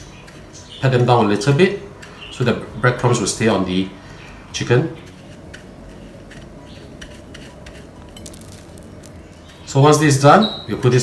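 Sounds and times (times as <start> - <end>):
breadcrumbs rustling: 5.0 - 10.3.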